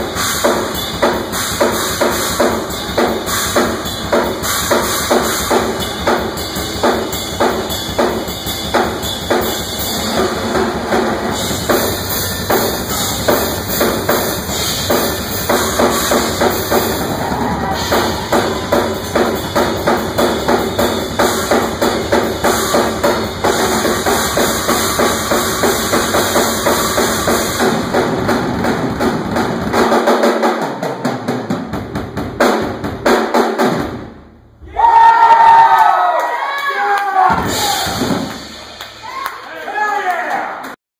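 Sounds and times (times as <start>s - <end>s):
instrumental rock band: 0.0s - 33.0s
drum kit driving strokes: 0.0s - 35.4s, 37.2s - 39.4s.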